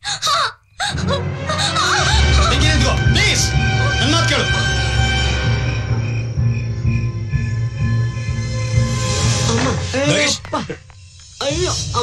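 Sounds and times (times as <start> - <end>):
dramatic film score music: 0.8 - 12.0.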